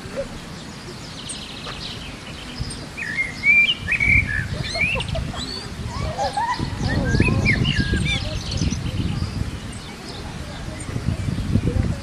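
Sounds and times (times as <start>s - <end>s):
low wind rumble: 0.0s - 12.0s
birds chirping and whistling: 0.4s - 11.8s.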